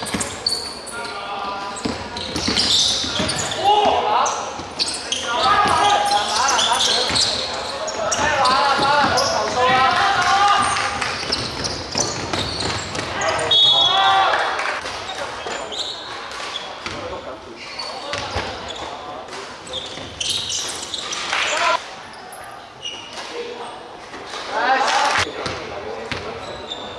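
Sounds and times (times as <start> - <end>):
players calling and shouting: 0.0 - 26.9
basketball bouncing on court: 1.8 - 3.6, 8.1 - 13.4.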